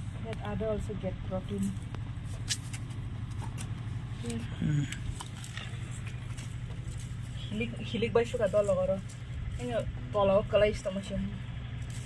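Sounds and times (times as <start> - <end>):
steady low hum: 0.0 - 12.0
murmured voice: 4.4 - 5.1.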